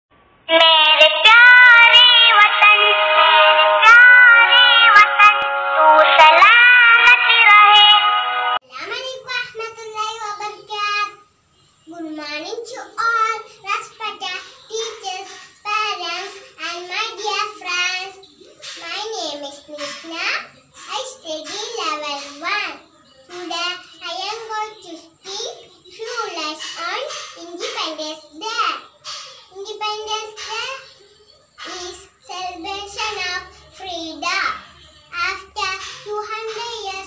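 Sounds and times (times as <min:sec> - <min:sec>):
girl speaking: 0:00.5 - 0:05.4, 0:06.0 - 0:07.9, 0:08.7 - 0:11.2, 0:11.9 - 0:18.2
child singing over music: 0:00.5 - 0:08.5.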